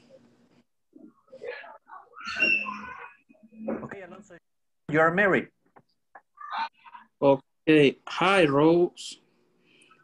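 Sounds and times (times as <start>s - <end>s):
animal high-pitched cry: 1.9s - 3.3s.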